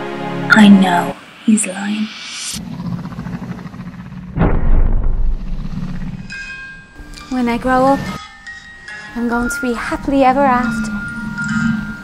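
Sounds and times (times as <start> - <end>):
low droning music: 2.4 - 12.0
deep boom hit: 4.2 - 6.3.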